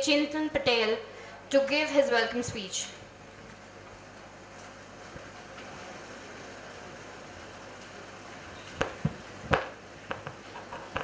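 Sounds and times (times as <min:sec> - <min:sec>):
public address system hum: 0:00.0 - 0:03.0.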